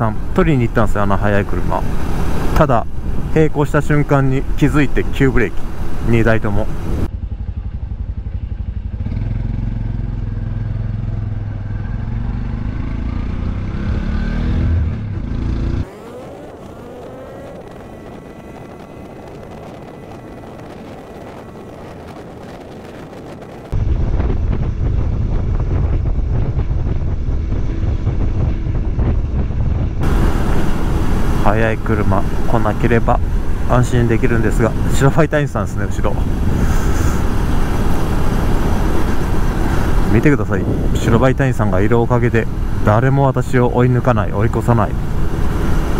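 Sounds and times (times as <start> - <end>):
wind noise: 0.0 - 7.2, 11.2 - 45.9
motorcycle engine running: 6.8 - 13.5, 23.7 - 35.0
rising whine: 9.4 - 45.9.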